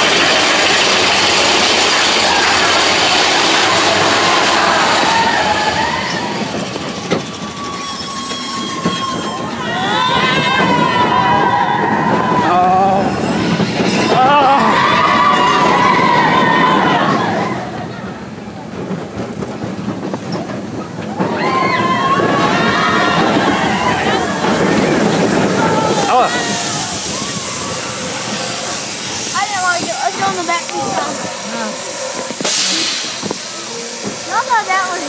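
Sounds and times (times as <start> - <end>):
roller coaster cars rattling: 0.0 - 35.0
high wheel squeal: 2.2 - 17.6, 21.2 - 35.0
high hiss: 24.2 - 35.0.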